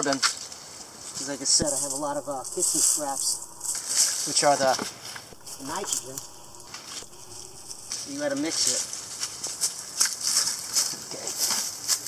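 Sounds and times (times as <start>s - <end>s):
dry leaves rustling: 0.0s - 12.0s.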